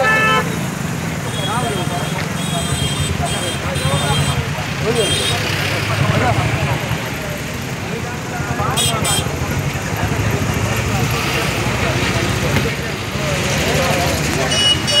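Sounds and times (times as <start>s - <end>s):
idling vehicle engines: 0.0s - 15.0s
men talking: 0.0s - 15.0s.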